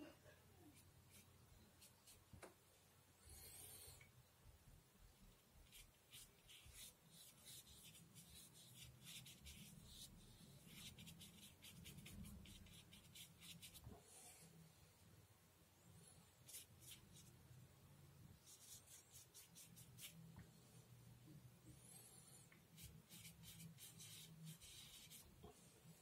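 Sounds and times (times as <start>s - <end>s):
paintbrush dabbing on paper: 0.6s - 2.3s, 5.6s - 14.0s, 16.4s - 17.4s, 18.4s - 20.4s, 22.5s - 25.7s.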